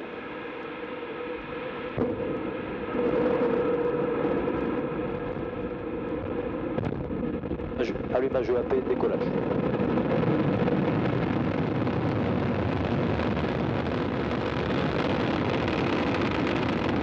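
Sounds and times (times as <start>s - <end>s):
rocket engine exhaust rushing: 0.0s - 17.0s.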